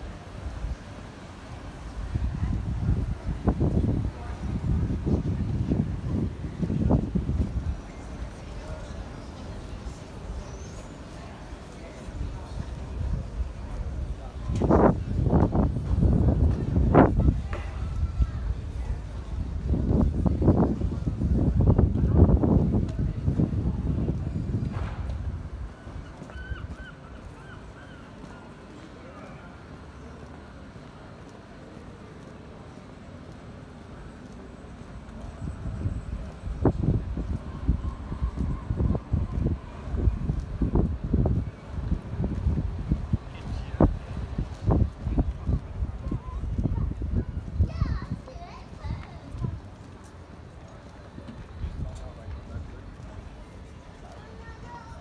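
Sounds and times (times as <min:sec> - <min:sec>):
voices of passers-by: 0:00.0 - 0:55.0.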